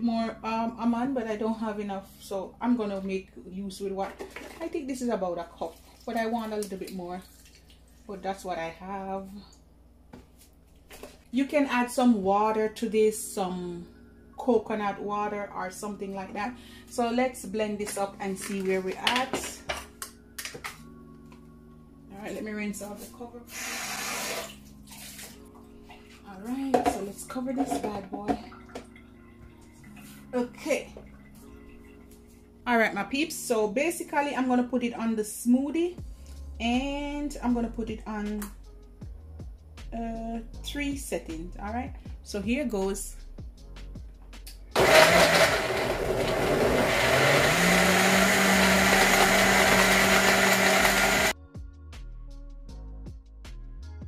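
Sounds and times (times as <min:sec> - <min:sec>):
water running from tap: 0:05.6 - 0:08.1, 0:23.5 - 0:25.4
blender motor running: 0:44.8 - 0:51.3.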